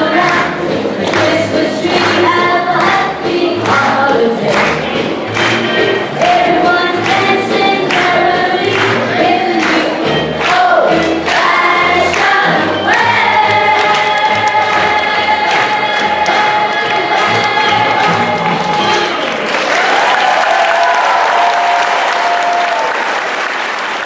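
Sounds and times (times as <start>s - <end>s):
students singing together: 0.0s - 5.0s, 6.2s - 19.2s.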